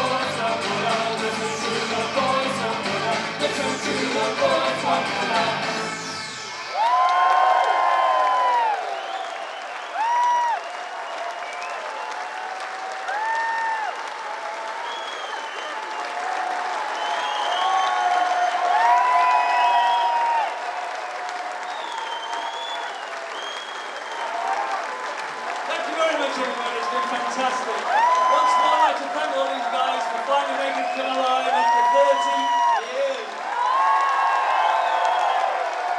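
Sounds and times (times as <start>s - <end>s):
synth-pop band playing: 0.0s - 8.2s
crowd applauding and cheering: 0.0s - 35.9s
long whistles: 6.2s - 12.3s, 14.8s - 16.2s, 16.9s - 20.5s, 21.6s - 24.6s, 34.4s - 35.6s.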